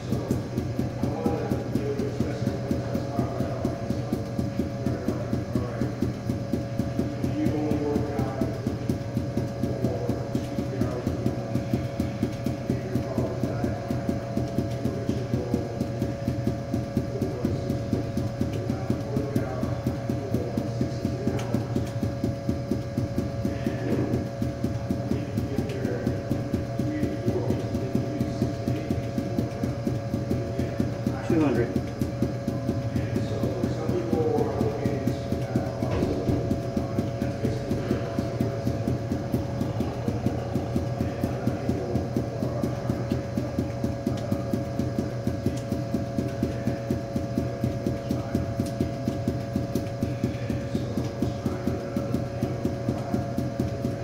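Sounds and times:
balls bouncing on hard floor: 0.1s - 54.0s.

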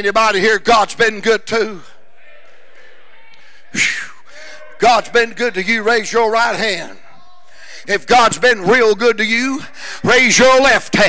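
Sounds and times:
room noise in a large hall: 0.0s - 11.0s.

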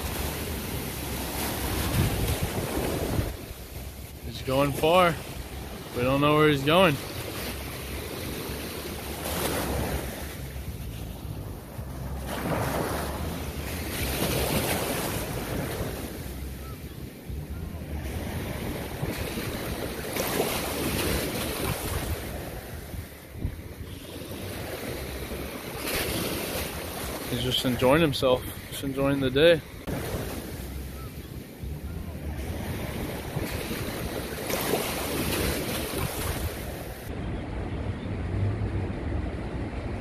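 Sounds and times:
ocean surf washing: 0.0s - 40.0s
wind rumbling on microphone: 0.0s - 40.0s.

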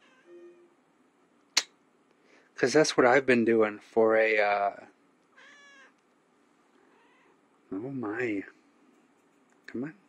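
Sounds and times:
cat meowing: 0.0s - 0.5s, 5.4s - 6.0s, 6.9s - 7.4s.

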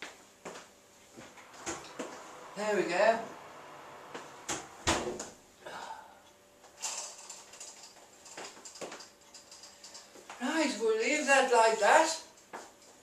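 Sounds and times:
oven shelf scraping: 1.2s - 5.2s.

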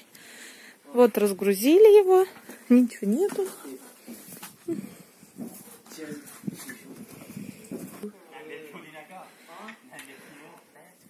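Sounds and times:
voices talking quietly: 0.8s - 11.0s.

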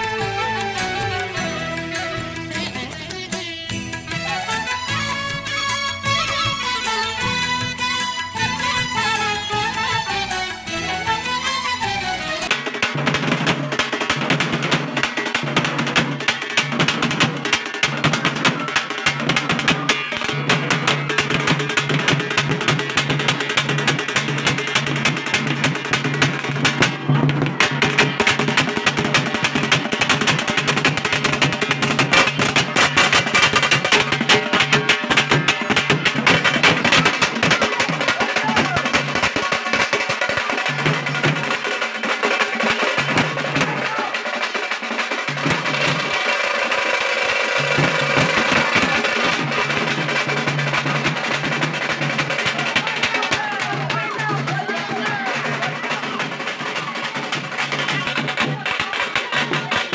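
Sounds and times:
fast dense drumming: 12.5s - 59.9s.

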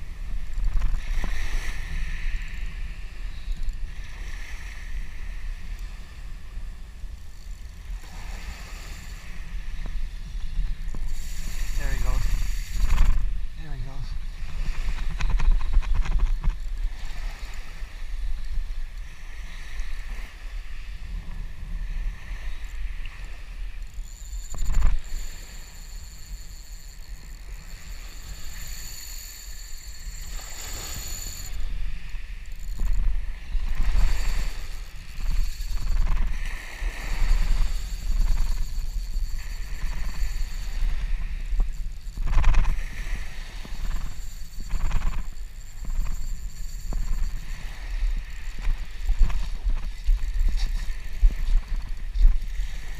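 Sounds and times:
small waves washing on beach: 0.0s - 52.9s
wind buffeting microphone: 0.0s - 52.9s.

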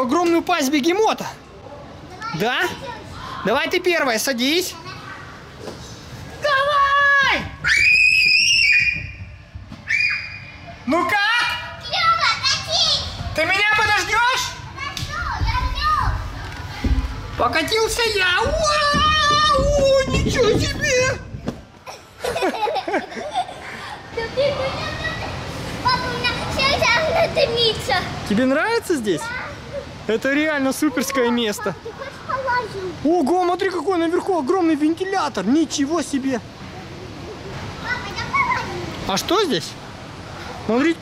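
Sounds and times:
children playing and shouting: 1.2s - 34.8s, 36.3s - 39.2s
child squealing and crying out: 7.6s - 9.2s, 9.8s - 10.5s.

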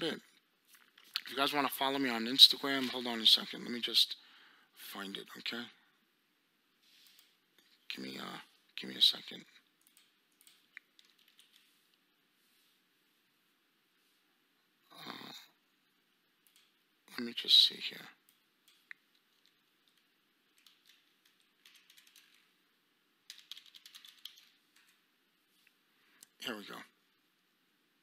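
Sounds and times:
faint keyboard typing: 6.9s - 12.1s, 16.4s - 26.4s.

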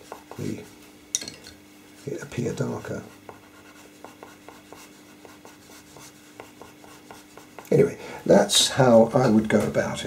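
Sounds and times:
pencil scratching on paper: 0.0s - 0.7s, 2.8s - 7.8s.

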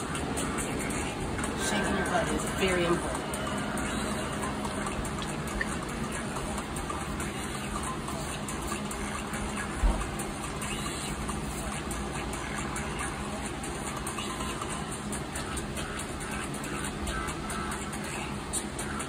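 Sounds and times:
steady rushing noise: 0.0s - 19.0s.

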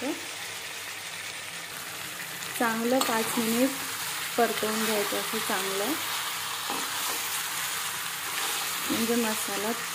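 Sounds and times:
chicken frying in oil: 0.0s - 9.9s.

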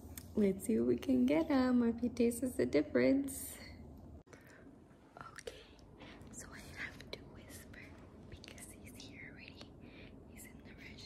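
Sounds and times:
woman whispering: 5.1s - 11.0s.

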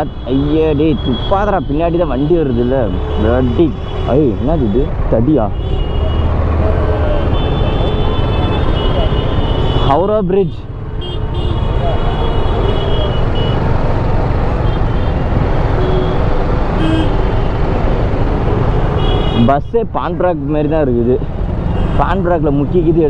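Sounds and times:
distant horns: 0.0s - 10.2s, 10.8s - 13.7s, 14.5s - 17.7s, 18.6s - 19.6s
traffic engines rumbling: 0.0s - 23.0s.

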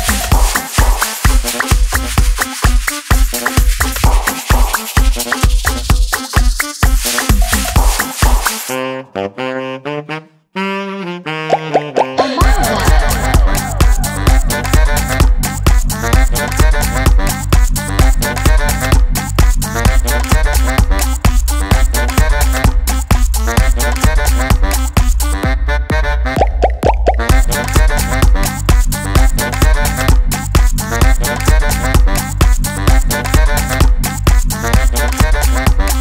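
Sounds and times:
heavy kick drum: 0.0s - 2.4s, 3.1s - 6.1s, 12.4s - 25.7s, 26.4s - 36.0s
dance track with horn riff: 0.0s - 36.0s.

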